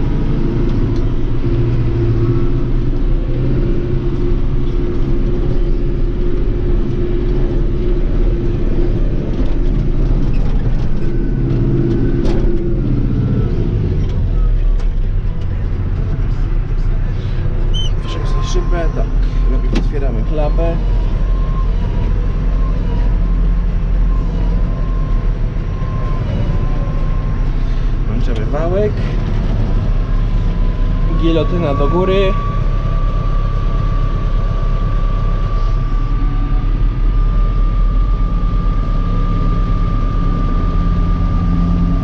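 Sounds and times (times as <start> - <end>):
tractor engine under load: 0.0 - 37.2.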